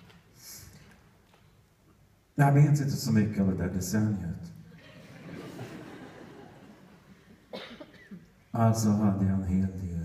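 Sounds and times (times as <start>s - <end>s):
person coughing: 7.5s - 8.4s.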